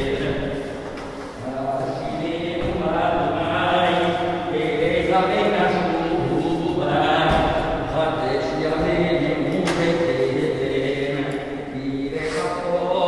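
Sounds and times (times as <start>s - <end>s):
men chanting a prayer: 0.0s - 13.0s.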